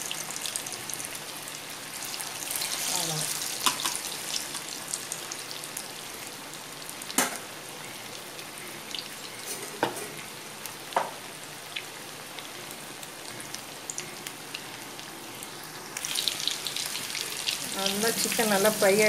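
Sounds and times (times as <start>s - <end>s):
chicken deep-frying in oil: 0.0s - 19.0s.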